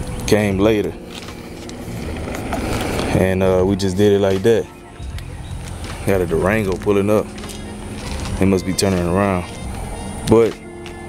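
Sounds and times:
vehicle engine and tyre noise: 0:00.0 - 0:11.0.

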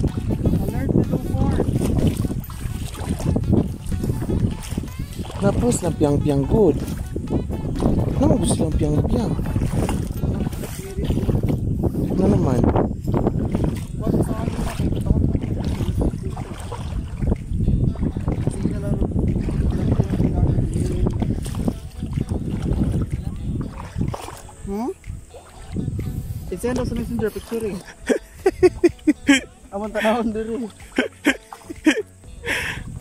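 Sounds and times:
indistinct voices talking: 0:24.6 - 0:32.6.

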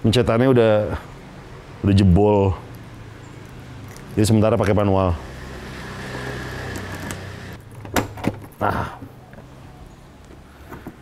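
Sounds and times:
lock clicking: 0:06.6 - 0:08.5.

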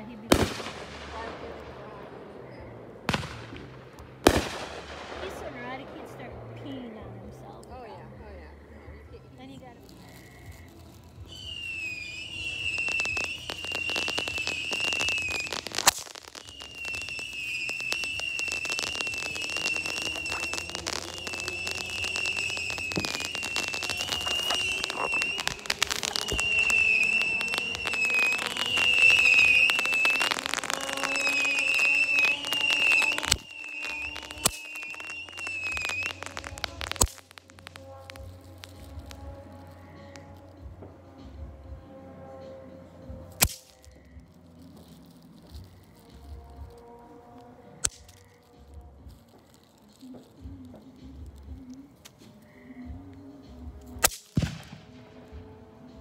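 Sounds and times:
firework crackling: 0:00.0 - 0:56.0
sharp firework pops: 0:00.3 - 0:01.5, 0:03.1 - 0:05.6, 0:09.9 - 0:40.5, 0:43.2 - 0:47.0, 0:47.8 - 0:53.1, 0:53.7 - 0:55.5
firework whistling: 0:09.8 - 0:56.0.

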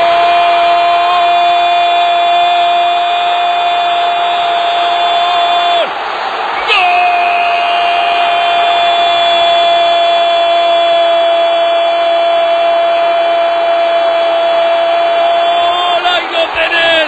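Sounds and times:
crowd noise: 0:00.0 - 0:17.0
commentator shouting: 0:15.3 - 0:17.0.

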